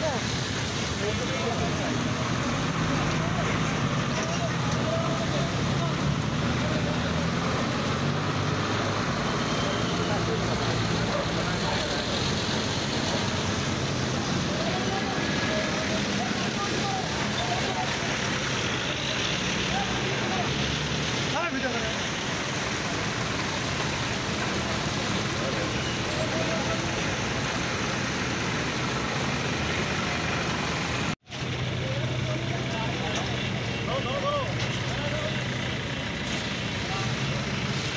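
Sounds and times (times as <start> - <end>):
hose water jets spraying: 0.0 - 37.9
vehicle engines humming: 0.0 - 37.9.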